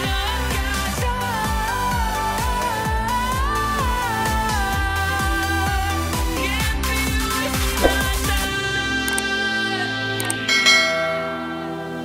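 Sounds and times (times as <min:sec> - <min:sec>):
background music: 0:00.0 - 0:12.0
short click: 0:07.8 - 0:08.1
bell chime: 0:10.5 - 0:12.0.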